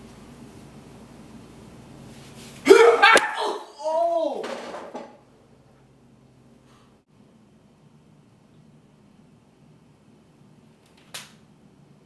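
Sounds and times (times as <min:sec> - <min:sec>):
person yelling: 0:02.6 - 0:04.6.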